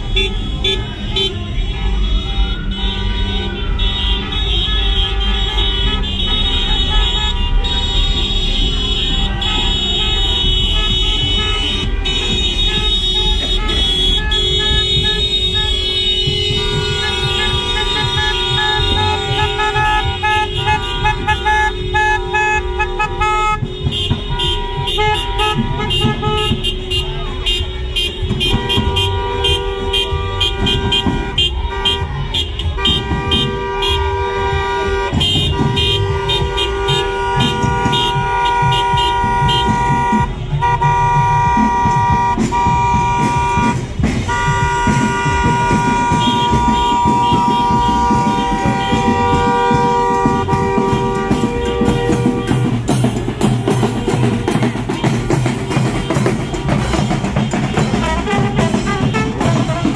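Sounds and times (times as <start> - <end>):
car engines: 0.0 - 59.9
car horns honking: 0.0 - 59.9.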